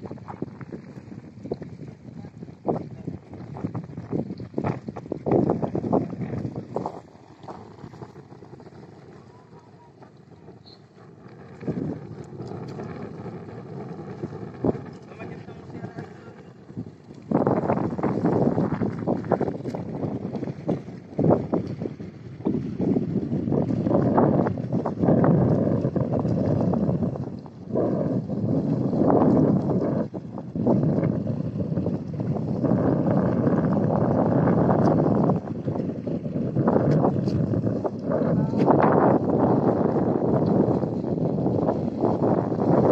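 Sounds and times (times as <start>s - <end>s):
wind buffeting microphone: 0.0s - 42.9s.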